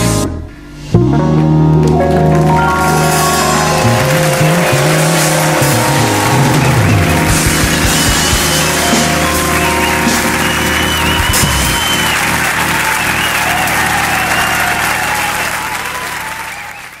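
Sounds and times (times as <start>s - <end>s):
live band final chord: 0.0s - 15.7s
audience applause and cheering: 1.7s - 17.0s.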